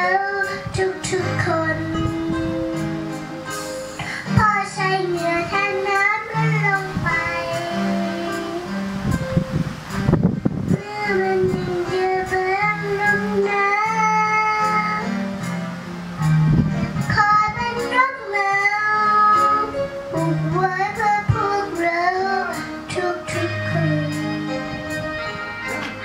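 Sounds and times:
girl singing into microphone: 0.0s - 15.5s, 16.2s - 26.0s
backing music with low notes: 0.0s - 26.0s.

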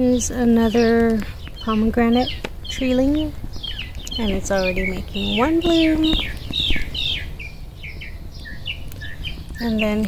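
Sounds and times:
songbird chirping: 0.0s - 10.0s.

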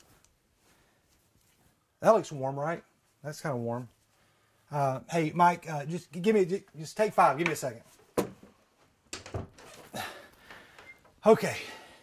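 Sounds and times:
clothes rustling: 0.0s - 11.5s
closet door opening: 7.4s - 11.3s.

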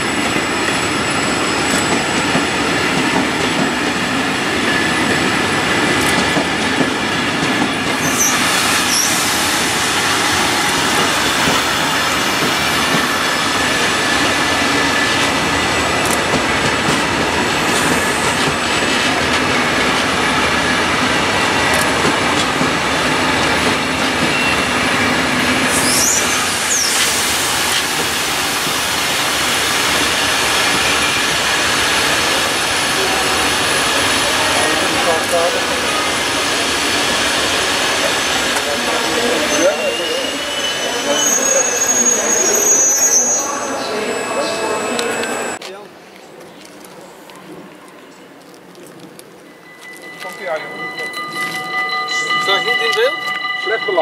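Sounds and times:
train wheels rumbling on rails: 0.0s - 43.4s
high wheel squeals: 7.9s - 15.2s, 23.4s - 27.8s, 36.9s - 45.6s.

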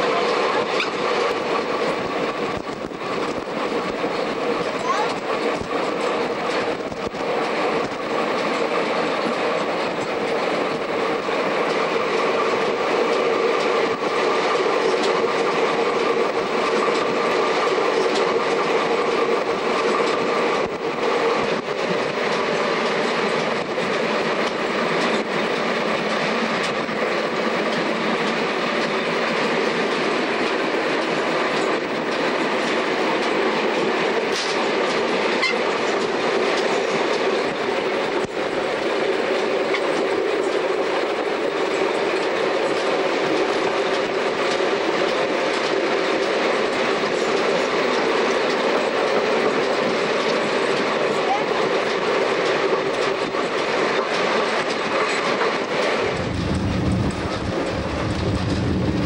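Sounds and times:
train wheels rumbling on track: 0.0s - 59.0s.

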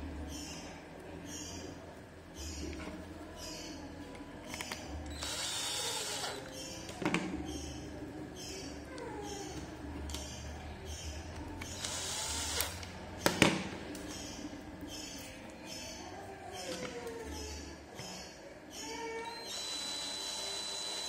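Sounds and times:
electric screwdriver whirring: 5.1s - 6.4s, 11.8s - 12.8s, 19.2s - 21.0s.

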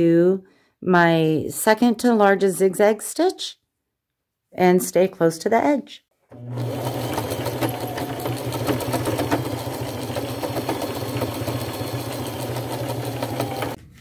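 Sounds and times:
sewing machine running: 6.3s - 13.8s.

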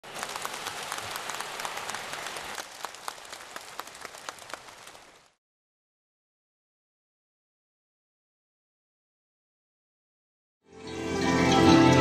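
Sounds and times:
large audience applauding: 0.0s - 5.4s.

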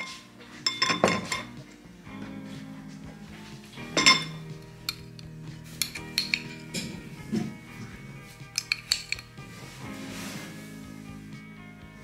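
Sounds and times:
spoon clinking against glass: 0.0s - 1.6s, 3.9s - 5.2s, 5.8s - 6.9s, 8.5s - 9.3s
soft background music: 0.0s - 12.0s
spoon taps and scrapes: 4.0s - 6.9s, 8.5s - 9.4s.

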